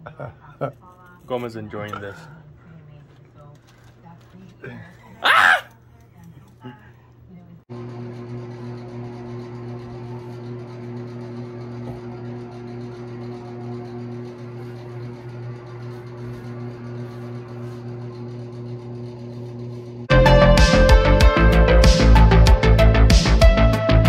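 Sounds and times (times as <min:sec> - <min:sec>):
electric appliance humming: 0:04.4 - 0:20.1.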